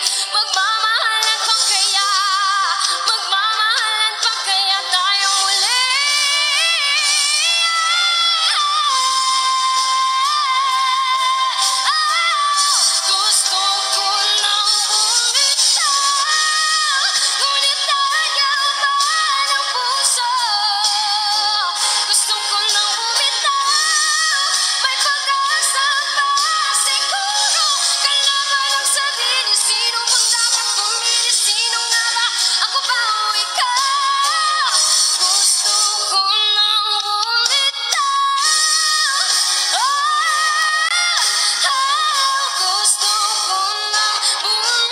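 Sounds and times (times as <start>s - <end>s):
woman singing into microphone: 0.0s - 44.9s.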